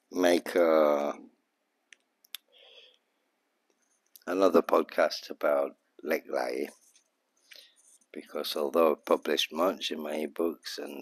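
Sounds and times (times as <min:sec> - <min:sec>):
faint sharp clicks: 0:01.9 - 0:03.0
soft breathy sound: 0:02.4 - 0:03.3, 0:06.7 - 0:08.2.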